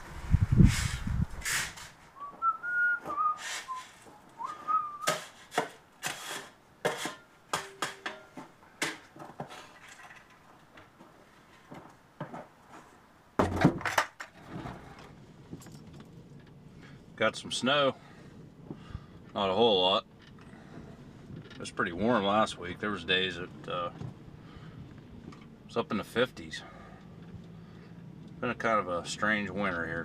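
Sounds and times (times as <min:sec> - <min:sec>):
low rumble: 0:00.0 - 0:01.5
shovel scraping coal: 0:00.6 - 0:02.1, 0:03.2 - 0:08.0
man whistling: 0:02.2 - 0:05.2.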